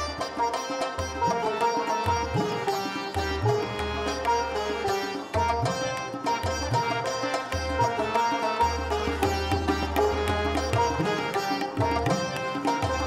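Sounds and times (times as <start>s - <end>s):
sitar melody: 0.0s - 13.0s
tabla drumming: 0.0s - 13.0s.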